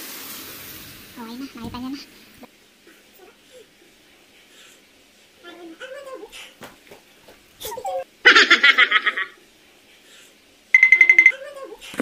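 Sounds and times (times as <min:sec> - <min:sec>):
woman laughing: 0:07.6 - 0:09.4.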